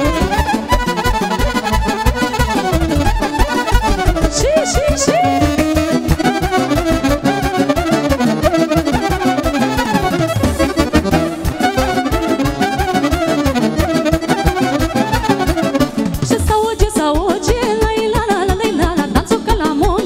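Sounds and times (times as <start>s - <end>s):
instrumental folk dance music: 0.0s - 20.0s.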